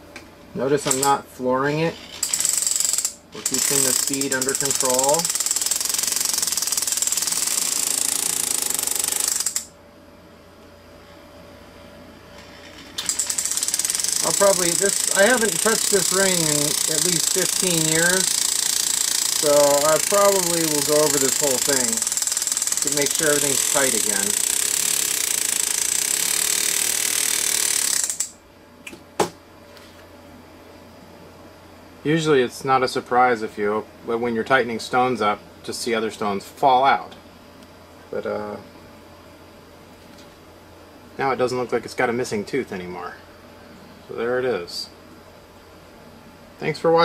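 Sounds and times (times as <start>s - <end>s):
sharp click: 0.1s - 1.2s, 28.1s - 29.4s.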